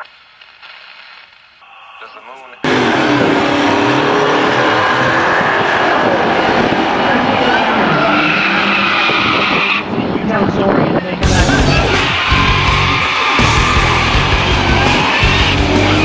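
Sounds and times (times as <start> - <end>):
engine at high revs: 2.6 - 10.3, 11.2 - 16.0
tyres squealing: 11.2 - 16.0.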